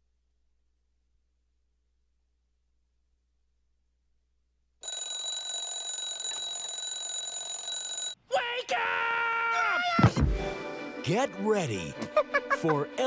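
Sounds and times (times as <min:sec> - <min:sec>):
alarm clock ringing: 0:04.8 - 0:08.2
voice: 0:08.3 - 0:10.2, 0:11.0 - 0:13.0.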